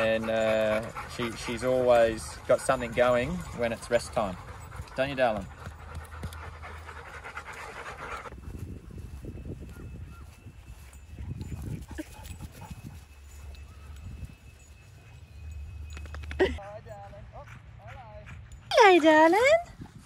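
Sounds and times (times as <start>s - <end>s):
dog panting hard: 0.0s - 8.4s.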